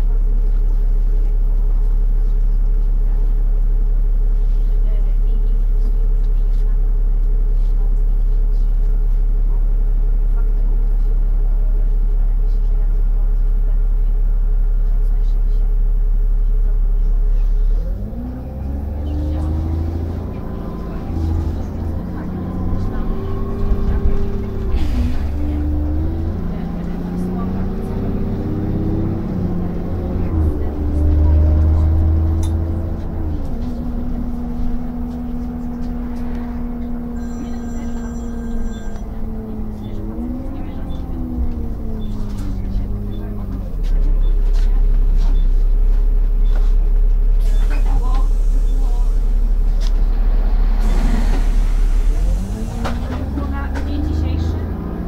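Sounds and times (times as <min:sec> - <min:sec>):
bus diesel engine: 0:00.0 - 0:55.0.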